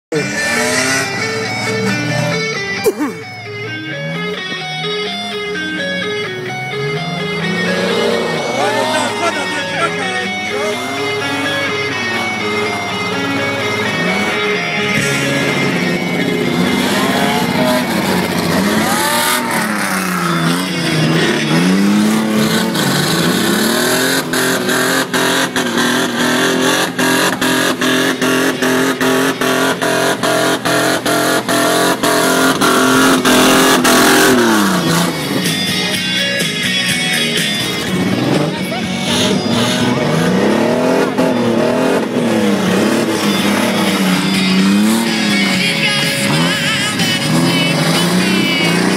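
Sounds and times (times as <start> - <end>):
truck engine revving: 0.1 - 48.9.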